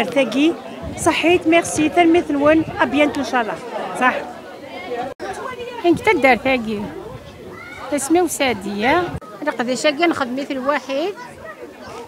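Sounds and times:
woman talking: 0.0 - 4.2, 5.7 - 7.1, 7.9 - 11.1
chatter of voices: 0.0 - 12.0.

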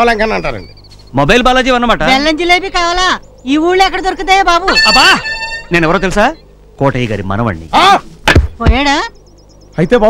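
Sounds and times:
film dialogue voices: 0.0 - 10.0
high steady tone: 0.2 - 6.6.

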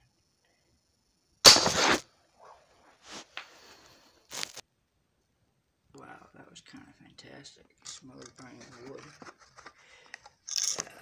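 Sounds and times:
air rifle shot and impact: 1.4 - 2.0.

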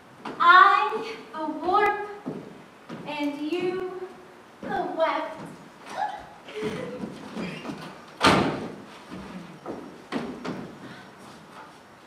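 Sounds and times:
door shutting with a bang: 8.2 - 8.8.

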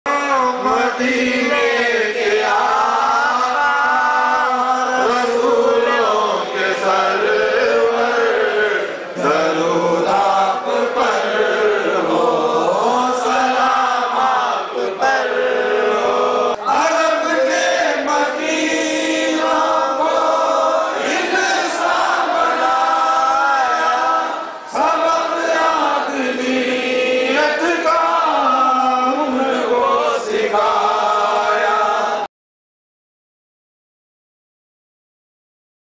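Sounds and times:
voices chanting: 0.7 - 32.2.

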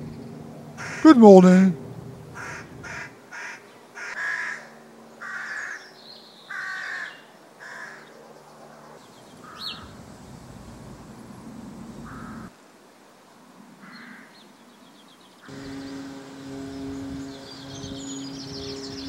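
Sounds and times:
rooks cawing: 0.8 - 1.1, 2.4 - 5.9, 6.5 - 8.1, 9.4 - 9.9, 12.0 - 12.5, 13.8 - 14.3.

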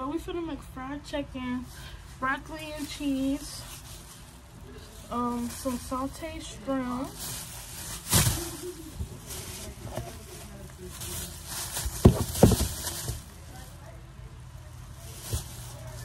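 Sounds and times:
plastic bag rustling: 1.6 - 16.0.

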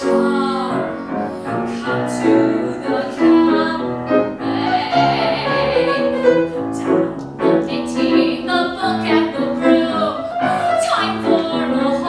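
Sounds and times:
grand piano: 0.0 - 12.0
woman singing: 0.0 - 12.0.

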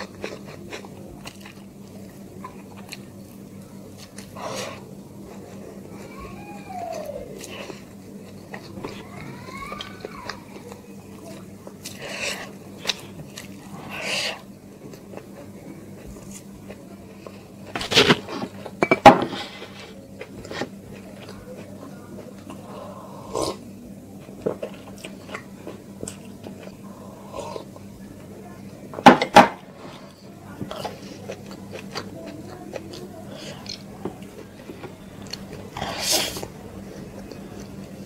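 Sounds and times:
person chewing food: 0.0 - 23.6, 24.2 - 27.9, 29.7 - 38.0
steady low hum: 0.0 - 38.0.

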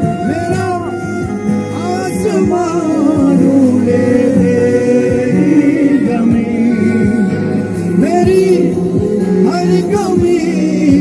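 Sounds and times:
men singing into microphones: 0.0 - 11.0
strummed acoustic guitar: 0.0 - 11.0.

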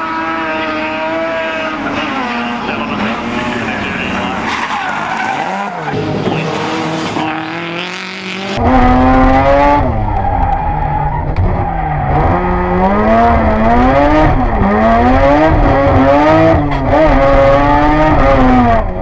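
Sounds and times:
rally car engines revving: 0.0 - 19.0
tyres squealing and skidding: 0.4 - 7.8, 9.9 - 12.4.

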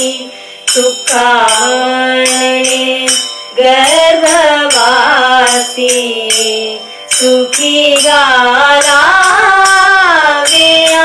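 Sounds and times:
metallic jingling percussion: 0.0 - 11.0
person singing devotional melody: 0.0 - 11.0.

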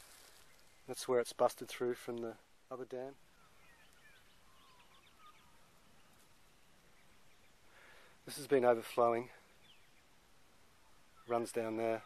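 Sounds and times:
faint bird chirps and whistles: 3.3 - 7.9, 9.2 - 12.0.

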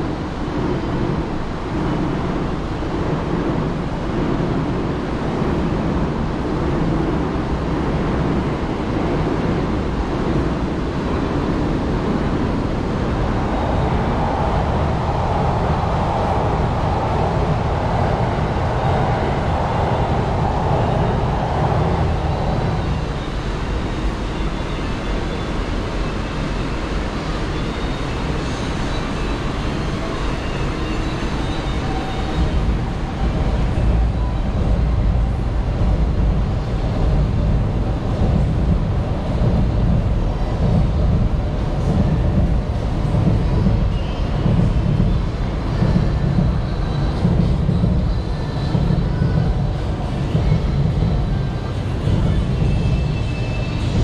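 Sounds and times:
low rumble of traffic: 0.0 - 54.0.

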